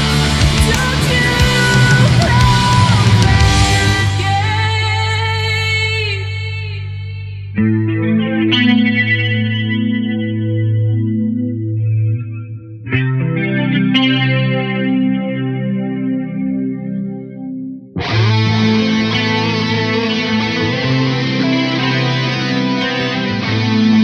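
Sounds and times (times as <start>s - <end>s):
electric guitar ringing chords: 0.0s - 6.6s, 7.3s - 24.0s.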